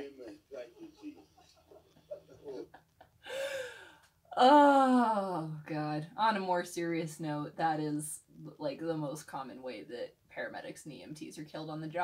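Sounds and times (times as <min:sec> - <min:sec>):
faint low speech: 0:00.0 - 0:02.7
woman gasping: 0:03.2 - 0:04.0.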